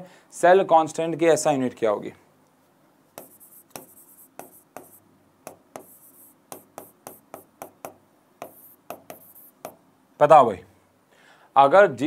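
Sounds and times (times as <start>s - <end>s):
marker pen writing on a board: 3.2s - 9.8s.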